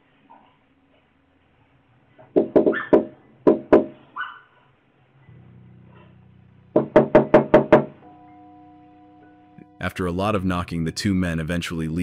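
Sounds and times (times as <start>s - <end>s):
knuckles knocking on a door: 2.4s - 4.0s, 6.8s - 7.9s
low steady music bed: 4.7s - 12.0s.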